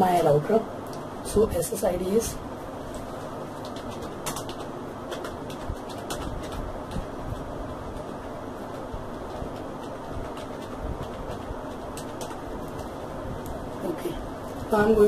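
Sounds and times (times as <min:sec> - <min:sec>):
low background hum: 0:00.0 - 0:15.0
keyboard keys clicking: 0:03.6 - 0:07.4, 0:08.7 - 0:12.9.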